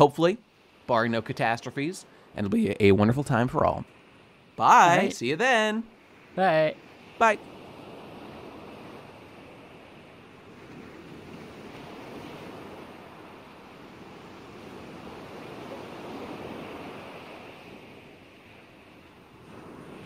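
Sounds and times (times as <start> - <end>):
ocean waves washing: 0.0 - 20.0.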